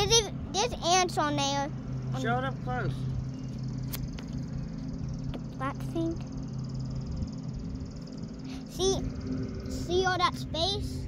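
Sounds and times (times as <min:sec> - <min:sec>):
low steady hum: 0:00.0 - 0:11.0
pulsing insect chorus: 0:00.0 - 0:11.0.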